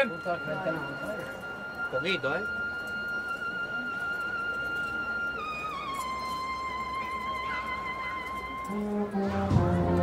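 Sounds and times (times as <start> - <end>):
wind instrument holding notes: 0.0 - 10.0.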